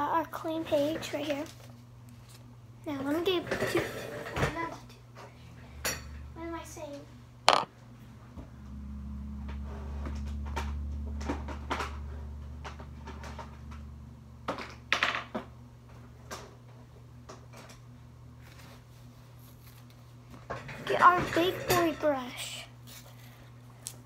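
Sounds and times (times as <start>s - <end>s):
low steady hum: 4.4s - 24.0s
small objects knocking: 7.5s - 7.7s.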